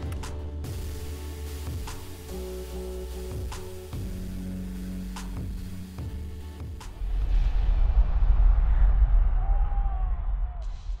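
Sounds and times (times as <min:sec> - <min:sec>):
deep cinematic boom and rumble: 0:07.0 - 0:11.0.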